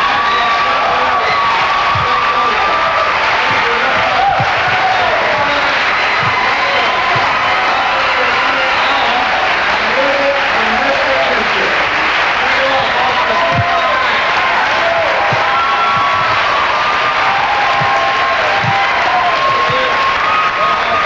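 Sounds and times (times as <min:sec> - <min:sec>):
audience applauding and cheering: 0:00.0 - 0:21.0.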